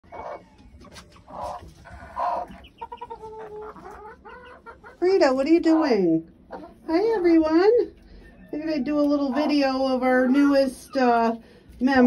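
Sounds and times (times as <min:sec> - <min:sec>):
chickens clucking: 0:00.0 - 0:11.4.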